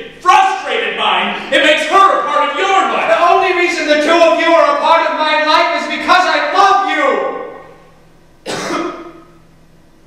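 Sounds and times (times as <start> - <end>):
man coughing: 8.4 - 9.4.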